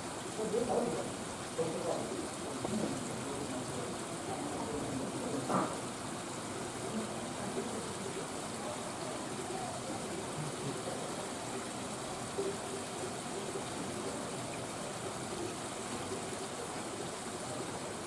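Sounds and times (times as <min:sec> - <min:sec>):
running water rushing: 0:00.0 - 0:18.0.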